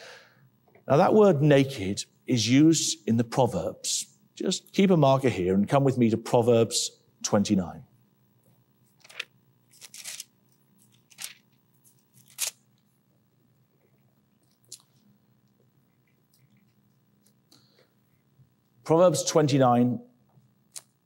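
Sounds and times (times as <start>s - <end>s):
faint room hum: 0.0s - 21.0s
book pages turning: 8.9s - 12.9s.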